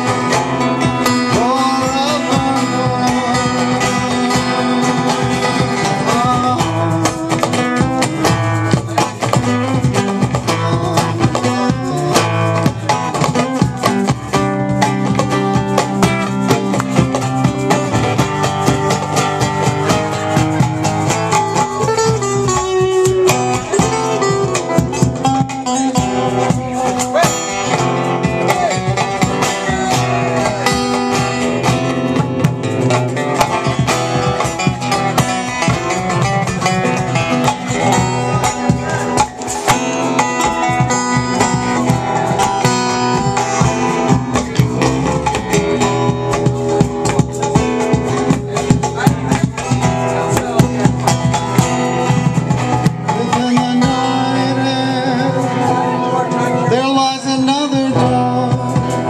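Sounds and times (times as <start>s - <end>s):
acoustic guitar strummed quickly: 0.0s - 59.0s
instruments playing melody: 0.0s - 59.0s.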